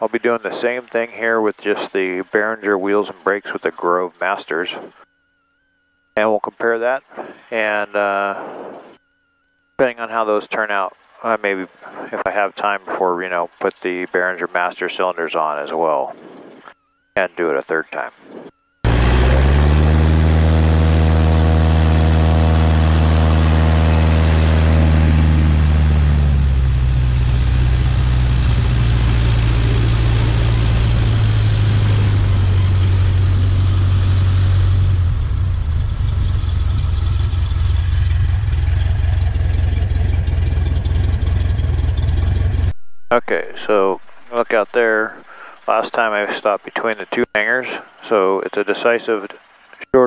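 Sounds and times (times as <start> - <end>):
light aircraft engine droning: 0.0 - 49.4.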